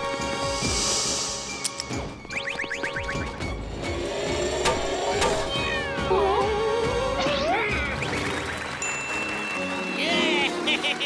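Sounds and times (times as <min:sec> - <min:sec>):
background music: 0:00.0 - 0:11.0
rising electronic chirps: 0:02.2 - 0:03.4.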